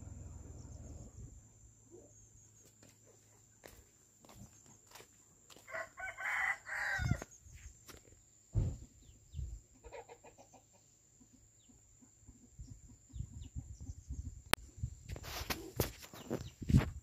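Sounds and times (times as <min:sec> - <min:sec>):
footsteps on dirt path: 0:02.6 - 0:08.8, 0:15.1 - 0:17.0
rooster crowing: 0:05.5 - 0:07.3
bird calls: 0:15.8 - 0:16.8.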